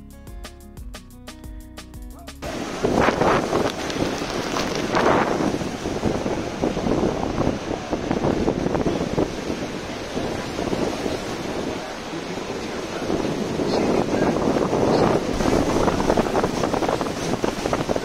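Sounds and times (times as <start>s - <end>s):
music: 0.0s - 3.4s
churning river water: 2.4s - 18.0s
gusty wind on microphone: 2.4s - 18.0s
waterfall roar: 2.4s - 18.0s.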